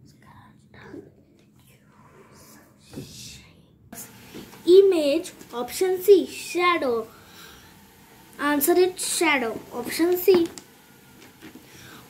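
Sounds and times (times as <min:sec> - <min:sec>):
child whispering: 0:00.0 - 0:03.8.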